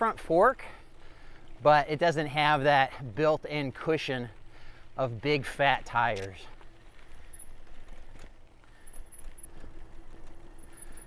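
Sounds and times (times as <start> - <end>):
bike rattling and clicking: 0.0 - 11.0
tyres crunching on gravel: 0.0 - 11.0.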